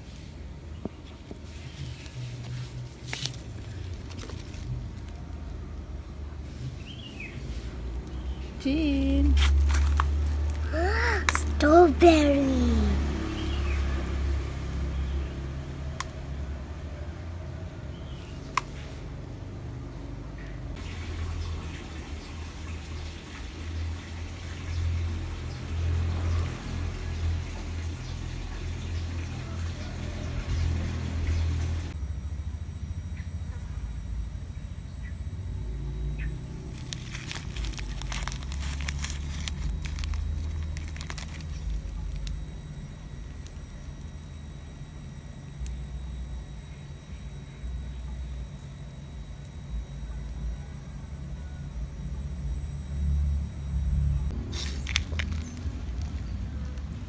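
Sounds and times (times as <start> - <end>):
low steady rumble: 11.4 - 57.0.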